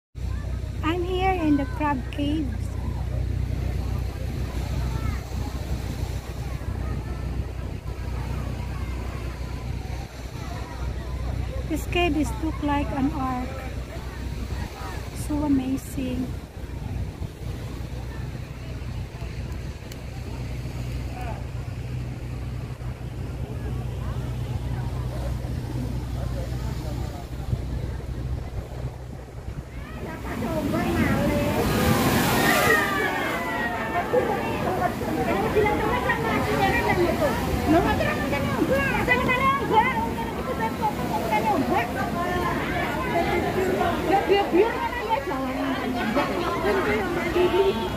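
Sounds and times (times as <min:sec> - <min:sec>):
faint crowd chatter: 0:00.2 - 0:47.9
people's voices: 0:00.2 - 0:47.9
wind buffeting microphone: 0:00.3 - 0:47.9
wave splashing against rocks: 0:25.3 - 0:47.9.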